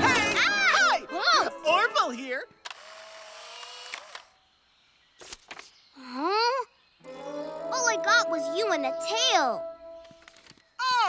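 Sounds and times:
camera motor whir: 2.7s - 4.3s.

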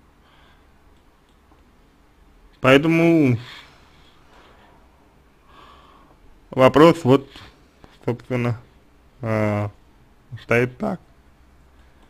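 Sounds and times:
low room noise: 0.0s - 12.0s
man breathing faintly: 0.1s - 0.9s, 3.4s - 6.4s.

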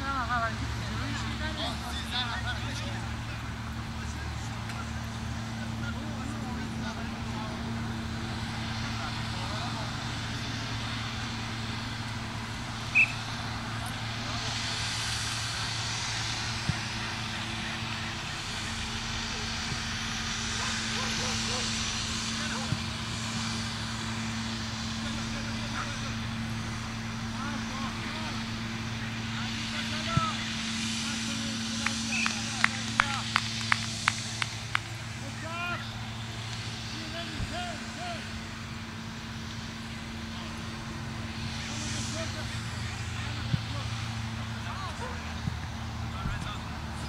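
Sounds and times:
distant players' voices: 0.0s - 47.0s
steady low hum: 0.0s - 47.0s
short high-pitched call: 12.9s - 13.3s.

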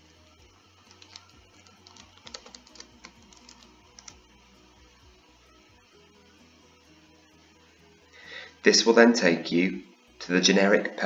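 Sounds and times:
keyboard keys clicking: 0.9s - 4.2s.

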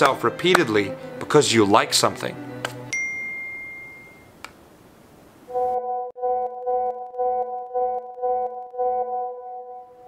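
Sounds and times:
bright electronic ding: 2.9s - 4.3s
pulsing electronic tone: 5.5s - 10.0s.

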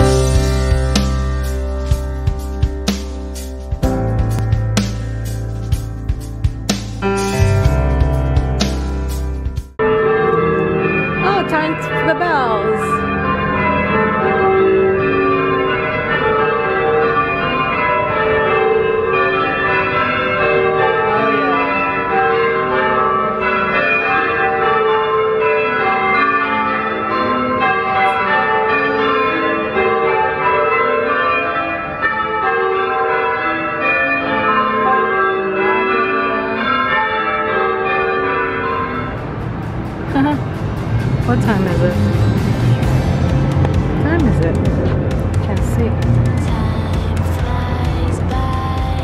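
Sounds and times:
church bells pealing: 0.0s - 49.0s.

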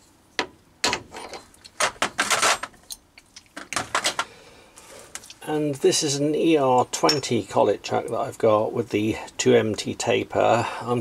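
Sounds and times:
metal clicks and knocks: 0.4s - 4.3s.

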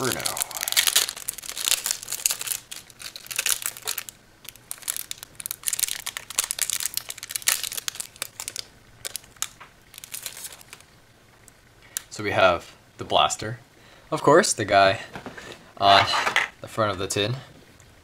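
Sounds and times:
plastic wrapper crinkling: 0.0s - 10.9s.

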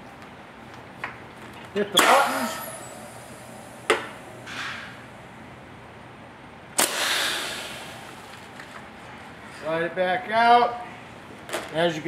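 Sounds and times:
pneumatic air hissing: 2.0s - 5.1s, 6.8s - 8.4s.

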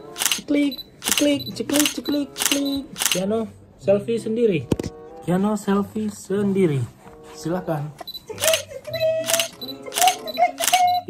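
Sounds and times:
camera shutter clicks: 0.0s - 3.3s, 8.4s - 11.0s
background music: 0.0s - 11.0s.

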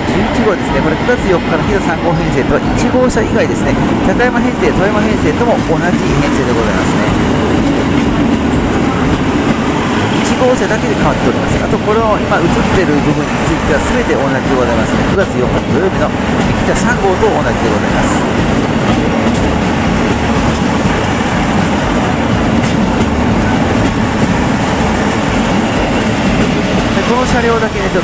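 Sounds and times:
diesel engines running: 0.0s - 28.0s
train wheels on rails: 0.0s - 28.0s.

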